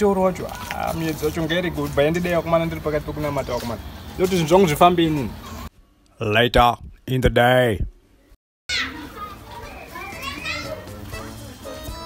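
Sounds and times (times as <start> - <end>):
children playing and calling out: 8.7 - 12.0.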